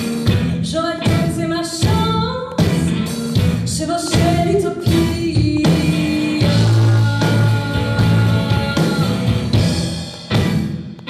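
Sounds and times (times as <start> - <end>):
drums: 0.0 - 11.0
electric bass: 0.0 - 11.0
woman singing: 0.5 - 9.6.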